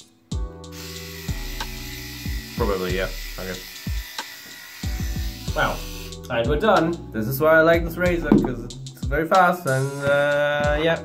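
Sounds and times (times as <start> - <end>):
soft background music: 0.0 - 11.0
electric shaver running: 0.7 - 6.2.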